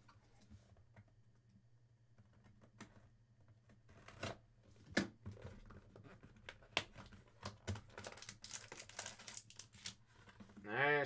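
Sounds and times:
foil pack crinkling: 0:07.9 - 0:10.0.

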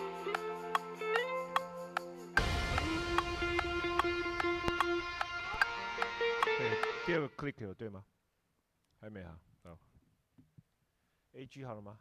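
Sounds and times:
held high-pitched instrument note: 0:00.0 - 0:07.2.

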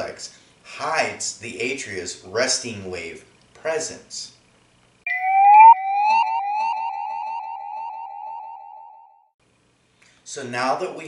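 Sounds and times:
rising siren whoops: 0:05.1 - 0:09.2.

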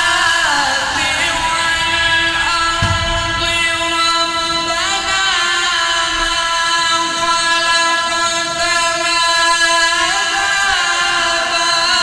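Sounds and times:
person reciting in long held vowel: 0:00.0 - 0:12.0.

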